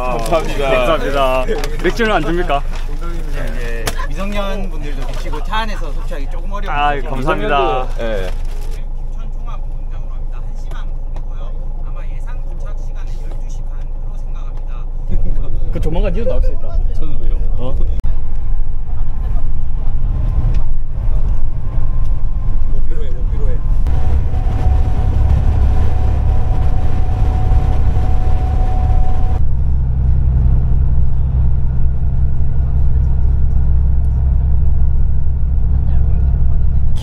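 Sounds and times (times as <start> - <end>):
bus engine and road drone: 0.0 - 37.0
thin steady whine: 21.2 - 37.0.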